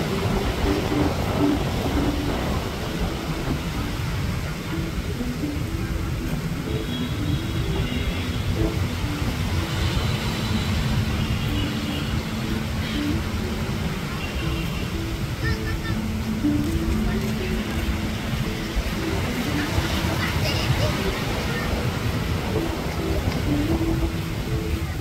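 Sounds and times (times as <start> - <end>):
rumble of surf: 0.0 - 25.0.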